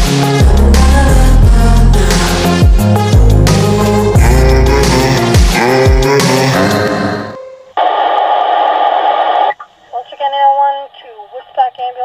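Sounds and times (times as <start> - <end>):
music: 0.0 - 7.8
two-way radio static: 7.8 - 12.0
dispatcher's voice over radio: 9.9 - 12.0.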